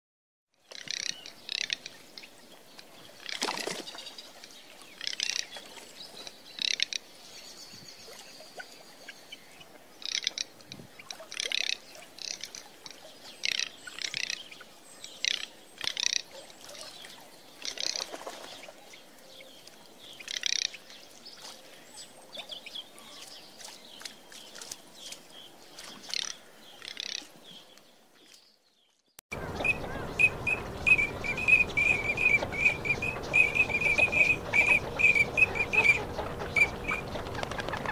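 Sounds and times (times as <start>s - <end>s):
duck rattling calls: 29.3s - 37.9s.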